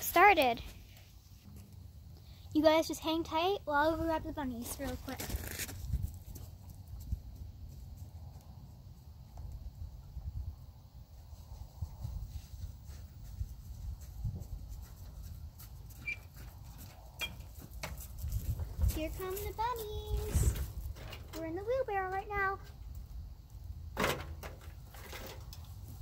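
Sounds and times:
faint squeaks: 16.0s - 16.4s.

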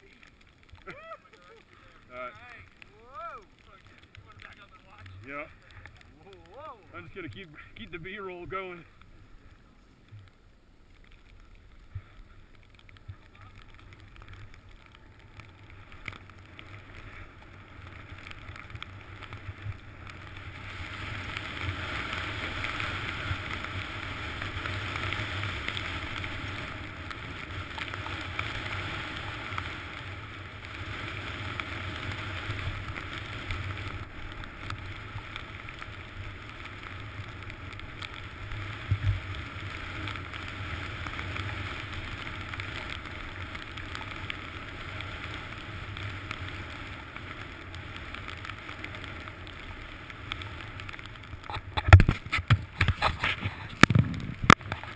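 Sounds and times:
skis running over snow: 0.0s - 10.1s, 11.0s - 54.9s.

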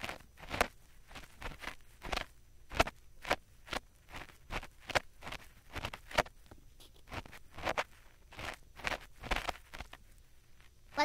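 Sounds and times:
ear pick scratching: 0.0s - 11.0s.

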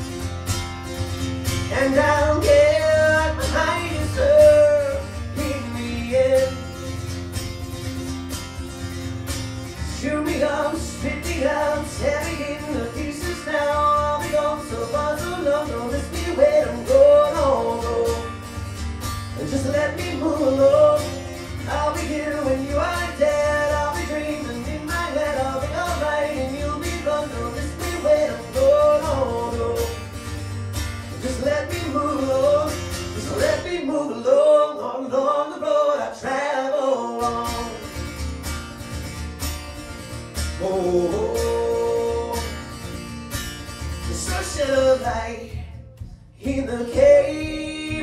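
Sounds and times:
strummed acoustic guitar: 0.0s - 48.0s
man singing: 1.6s - 7.1s, 9.8s - 18.5s, 19.3s - 30.3s, 31.1s - 38.0s, 40.5s - 42.8s, 43.9s - 48.0s.

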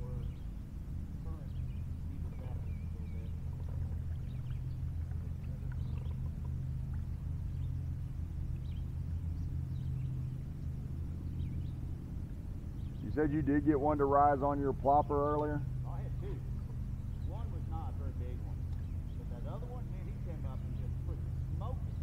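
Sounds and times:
river rumble: 0.0s - 22.0s.

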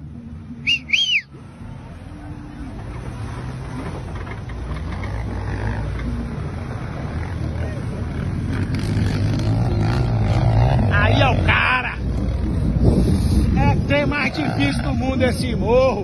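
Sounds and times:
diesel engine pulling under load: 0.6s - 14.5s.

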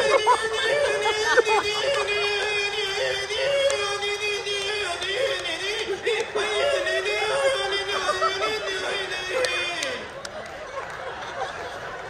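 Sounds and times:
person singing a long high note: 0.0s - 10.1s.

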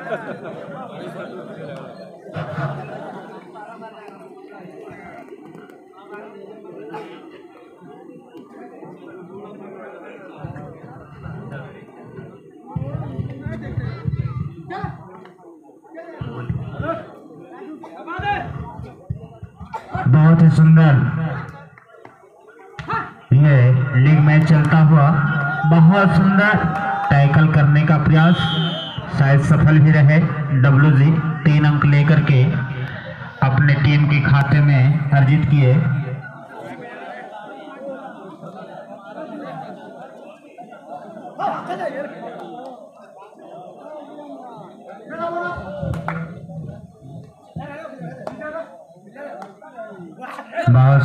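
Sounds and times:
spectators chattering and calling: 0.0s - 51.0s
loud shout: 25.4s - 27.5s.

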